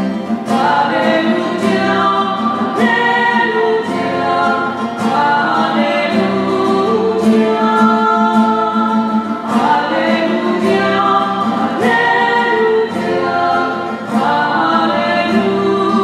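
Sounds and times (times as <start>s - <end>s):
church choir singing: 0.0s - 16.0s.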